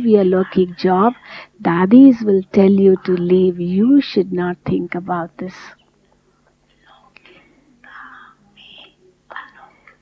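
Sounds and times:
low steady hum: 0.0 - 10.0
whispery voice: 6.8 - 10.0.

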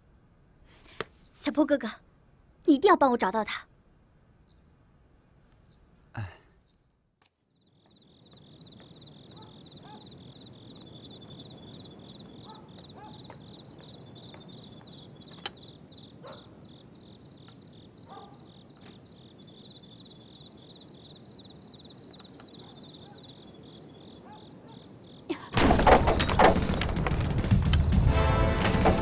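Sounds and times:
higher insect chirp: 7.5 - 25.5
insects trilling: 7.5 - 25.5.

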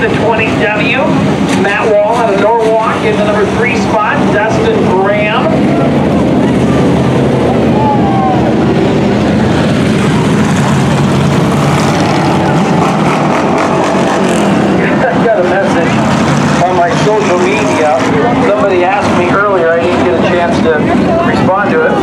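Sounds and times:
race car engines running: 0.0 - 22.0.

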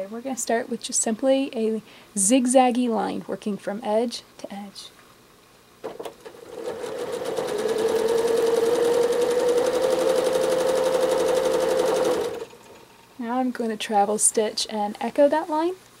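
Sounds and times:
sewing machine stitching: 5.8 - 12.9.

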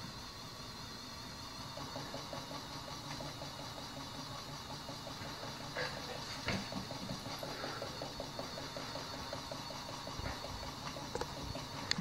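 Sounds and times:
toy motor running: 0.0 - 12.0
rapid even ticking: 1.4 - 12.0.

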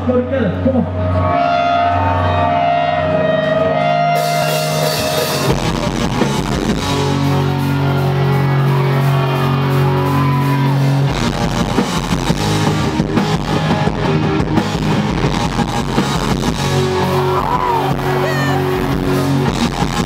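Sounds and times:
distorted electric guitar chord: 1.1 - 20.0
drums and bass beat: 4.1 - 20.0.

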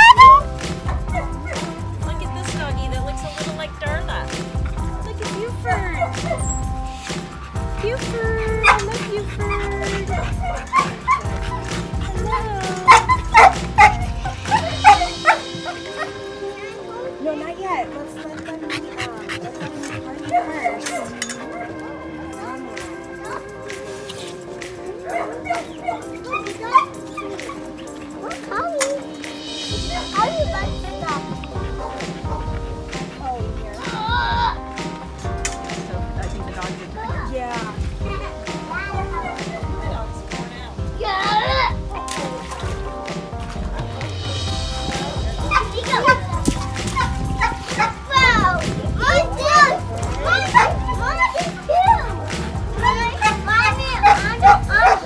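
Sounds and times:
children squealing and shouting: 0.0 - 1.9, 5.6 - 35.3, 36.9 - 55.0
background music: 0.0 - 55.0
dogs barking and yipping: 0.0 - 55.0.

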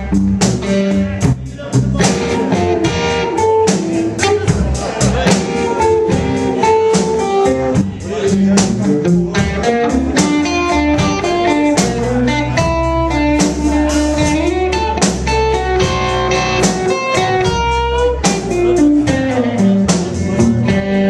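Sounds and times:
electric guitar line bending: 0.0 - 21.0
live blues band playing: 0.0 - 21.0.

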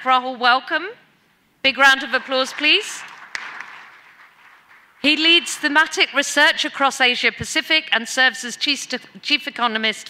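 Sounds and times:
audience applauding: 2.0 - 5.1.

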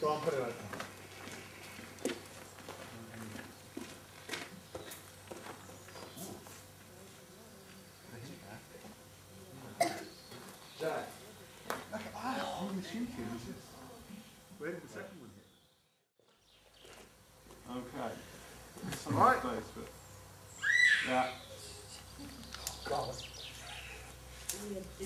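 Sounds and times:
faint songbird chirps: 14.2 - 17.1, 20.0 - 24.2.

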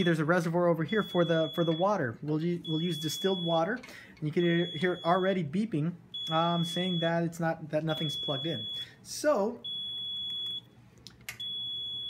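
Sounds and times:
high-pitched alarm beeping: 0.0 - 3.8, 4.4 - 5.5, 6.1 - 9.0, 9.6 - 10.6, 11.4 - 12.0.

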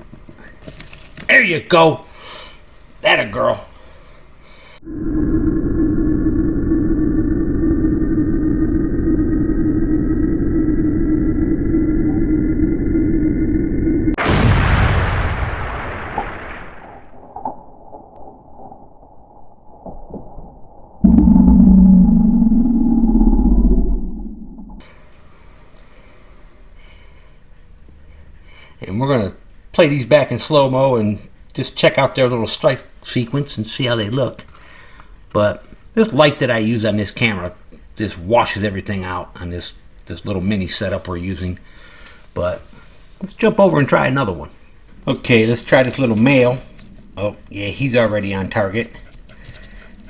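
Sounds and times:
low drone with rising tone: 4.8 - 14.2, 19.4 - 24.8
low rumbling hit: 4.8 - 24.8
loud boom-like hit: 14.1 - 17.7, 21.0 - 24.8.

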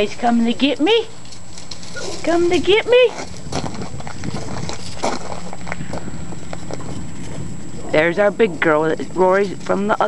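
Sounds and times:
footsteps on gravel: 1.4 - 7.8.

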